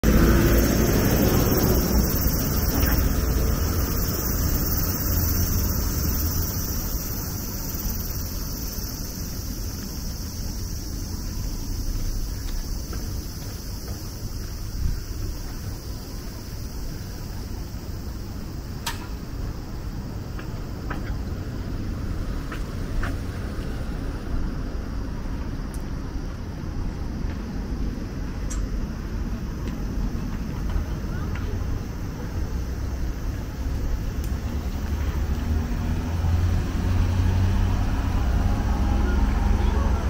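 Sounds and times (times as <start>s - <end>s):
road traffic rumble: 0.0s - 40.0s.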